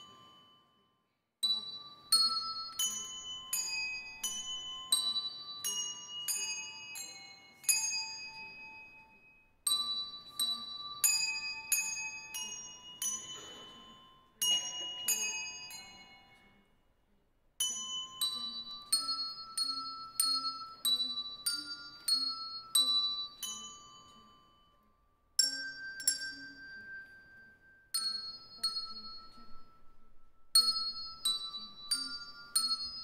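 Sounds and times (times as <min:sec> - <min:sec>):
handbell choir melody: 0:00.0 - 0:16.9, 0:17.6 - 0:33.0.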